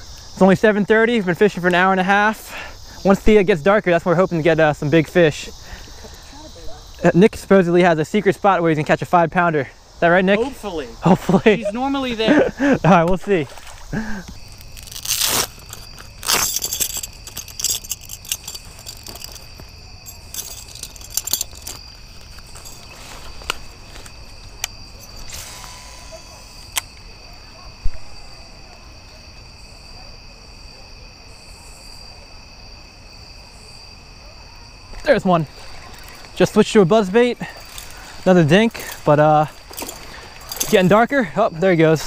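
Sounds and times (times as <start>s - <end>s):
insects chirping: 0.0s - 42.0s
fishing tackle rustling: 11.4s - 25.3s, 35.5s - 42.0s
fishing reel clicking: 14.6s - 19.5s.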